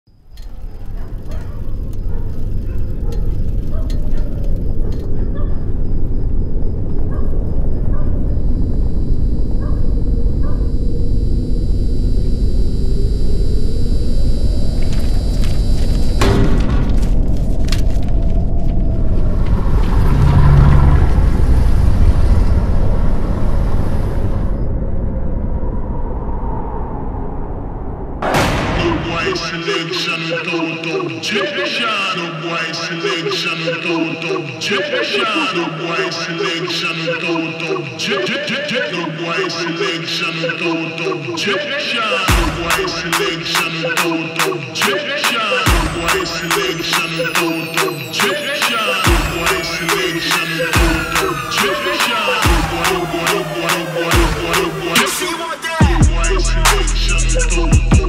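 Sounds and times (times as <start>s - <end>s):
low rumbling drone: 0.4s - 29.6s
sharp cinematic hit: 28.2s - 29.6s.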